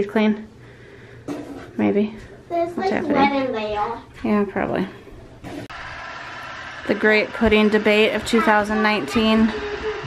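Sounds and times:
water flosser pump buzzing: 5.7s - 10.0s.

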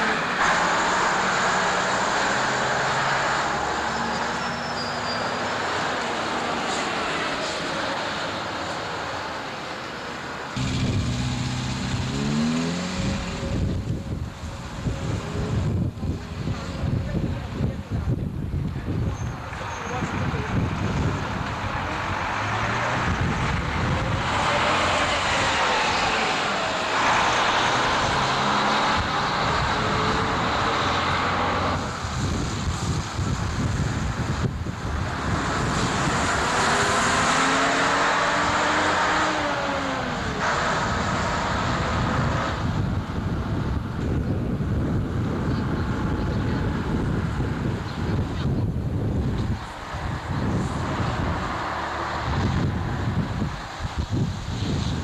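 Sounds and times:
diesel bus engines accelerating: 0.0s - 55.0s
traffic rumble: 0.0s - 55.0s.

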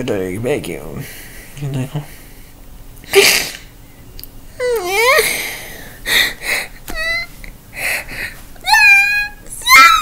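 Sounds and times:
man sneezing: 3.1s - 3.7s.

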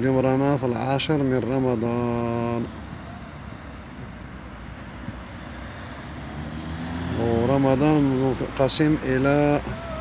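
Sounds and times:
traffic hum: 0.0s - 10.0s
van road noise: 0.0s - 10.0s.

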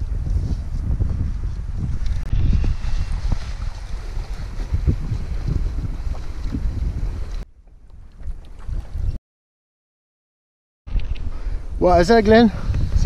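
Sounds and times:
wind buffeting microphone: 0.0s - 9.2s, 10.9s - 13.0s.

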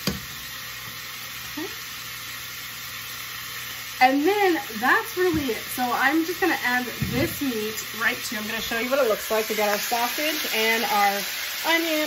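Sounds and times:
bacon sizzling in a frying pan: 0.0s - 12.0s.

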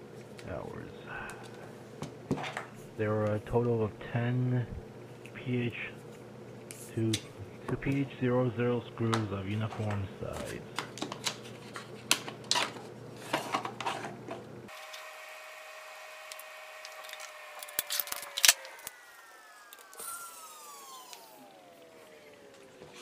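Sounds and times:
bits shifting in slots: 16.3s - 19.0s.

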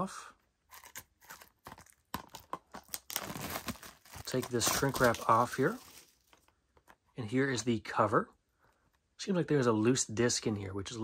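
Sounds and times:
plastic wrap crinkling: 0.7s - 6.5s.

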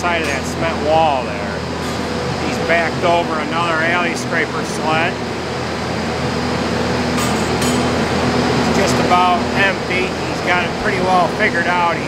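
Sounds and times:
truck mechanical drone: 0.0s - 12.0s.

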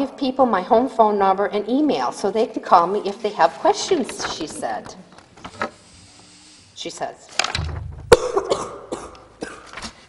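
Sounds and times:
person coughing: 8.1s - 9.8s.

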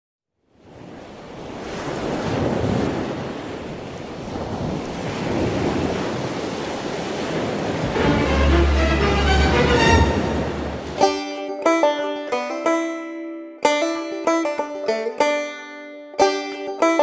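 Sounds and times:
ocean waves washing: 0.6s - 11.2s.

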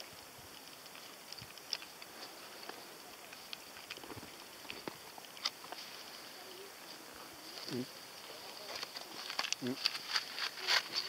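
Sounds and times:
faint steady hiss: 0.0s - 11.0s
footsteps on loose rock: 8.5s - 11.0s.

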